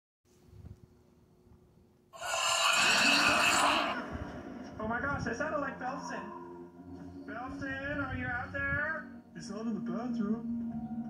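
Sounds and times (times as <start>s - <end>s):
cartoon scream from tv: 2.2s - 4.1s.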